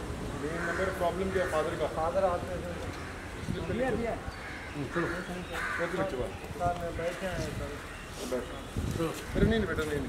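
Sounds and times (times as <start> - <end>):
crow cawing: 0.4 - 6.4
people talking: 0.4 - 10.0.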